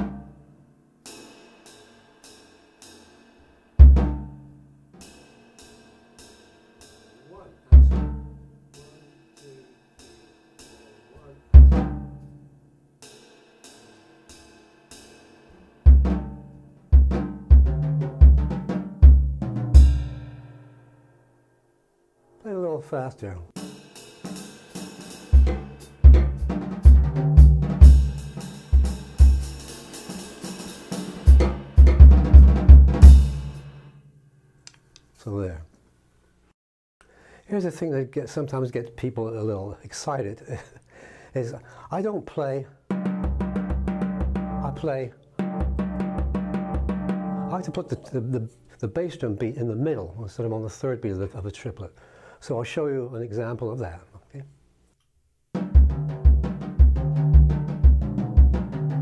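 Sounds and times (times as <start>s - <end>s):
snare and tom strokes: 0.0s - 0.3s, 17.0s - 20.4s, 23.6s - 33.8s, 42.9s - 48.0s, 55.6s - 59.0s
soft cymbal strokes: 8.7s - 11.4s
bass drum thud: 11.6s - 12.1s, 15.9s - 16.4s, 17.0s - 20.2s, 25.4s - 29.6s, 31.3s - 33.6s, 42.9s - 47.6s, 55.6s - 59.0s
loud accented drum hits: 11.6s - 12.1s, 17.0s - 20.4s, 25.3s - 29.7s, 30.9s - 33.7s, 42.9s - 47.6s, 55.6s - 59.0s.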